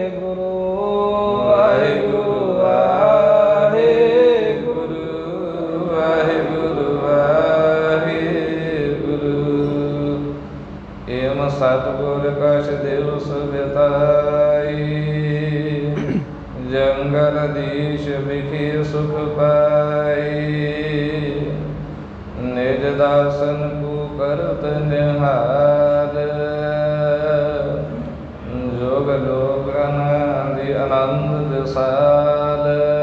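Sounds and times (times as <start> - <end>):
man chanting: 0.0 - 10.3, 11.1 - 21.7, 22.4 - 33.0
steady low drone: 0.0 - 33.0.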